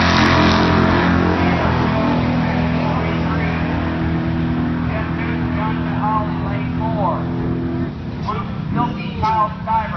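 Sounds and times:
car engine idling: 0.0 - 9.9
people's voices: 4.8 - 7.3, 8.2 - 9.9.

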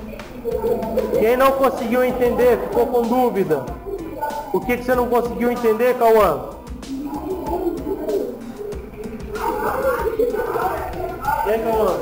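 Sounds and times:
children's voices overlapping: 0.0 - 12.0.

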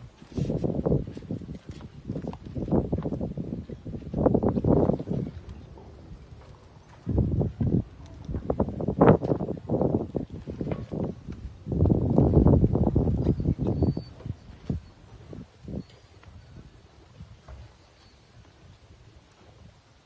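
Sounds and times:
oar slapping water: 0.0 - 19.8.

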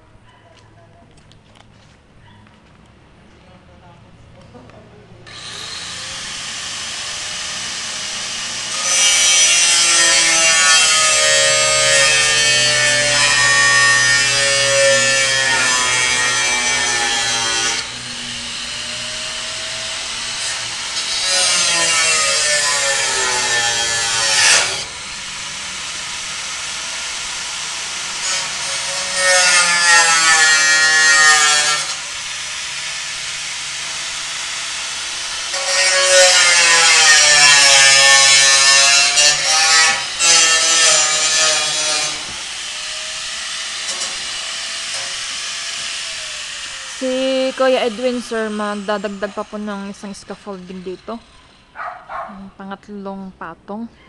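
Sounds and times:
angle grinder cutting steel: 5.3 - 51.8.

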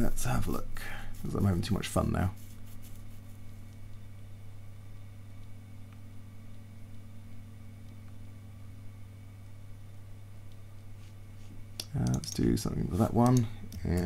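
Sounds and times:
steady low hum: 0.0 - 14.0.

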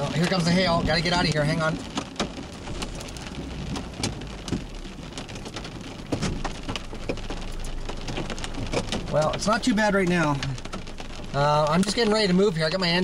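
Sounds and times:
low rumble: 0.0 - 13.0
rain and hail on car roof: 0.0 - 13.0.

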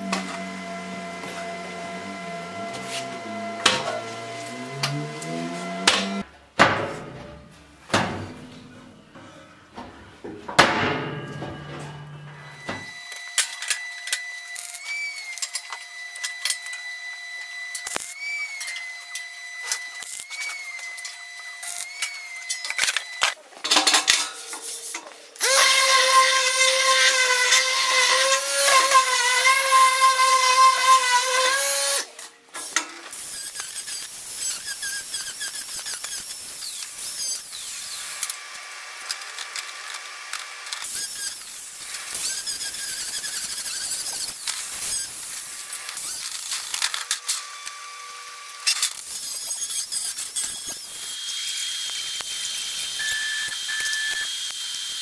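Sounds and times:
power drill whining: 0.0 - 6.3, 12.4 - 23.4, 25.4 - 55.0
shop work knocks and tones: 2.6 - 8.8, 9.8 - 13.0.

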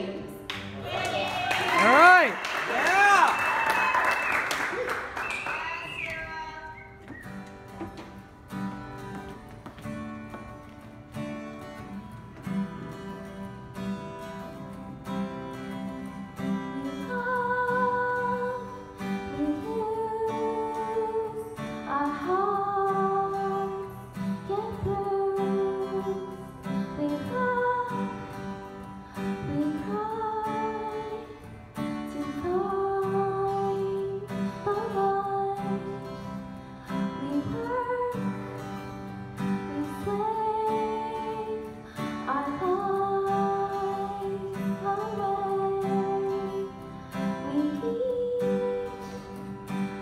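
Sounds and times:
strummed acoustic guitar: 6.8 - 50.0
woman singing: 16.4 - 50.0.

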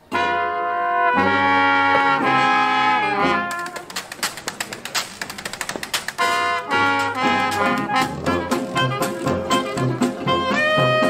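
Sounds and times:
swing-style brass jingle: 0.1 - 4.0, 6.2 - 11.0
sharp percussive clicks and taps: 3.4 - 11.0.

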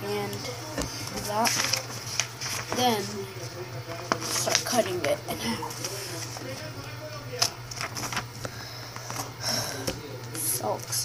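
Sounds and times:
steady low hum: 0.0 - 11.0
paper rustling: 0.3 - 11.0
hissy paper scrapes: 0.9 - 3.2.

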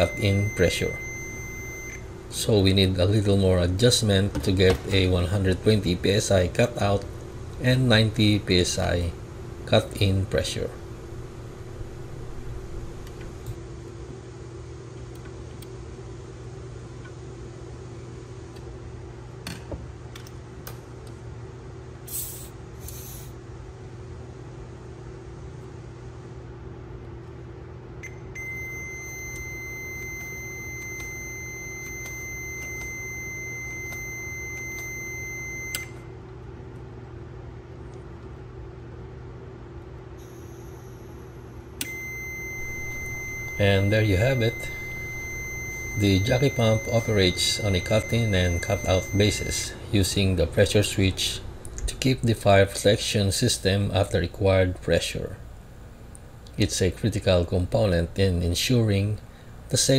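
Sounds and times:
high electronic beep: 0.0 - 2.0, 28.4 - 35.9, 41.8 - 49.8
pump machine hum: 0.0 - 13.6, 41.8 - 53.0.

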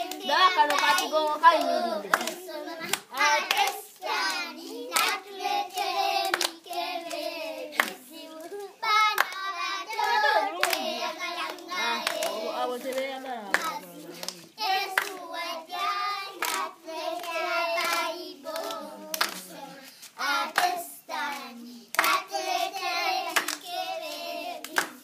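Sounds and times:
hand claps: 0.0 - 5.2, 5.8 - 8.0, 9.1 - 10.9, 11.5 - 15.2, 17.2 - 19.5, 20.6 - 22.2, 23.3 - 23.6, 24.6 - 25.0
children singing together: 0.0 - 12.5, 14.4 - 25.0.

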